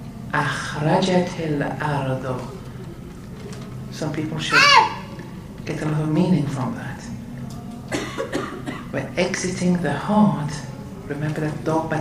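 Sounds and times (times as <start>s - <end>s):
person coughing: 7.9s - 9.0s.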